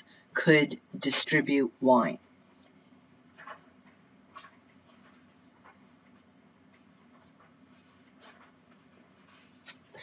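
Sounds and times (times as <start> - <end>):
soft rustles and taps: 3.3 - 9.9.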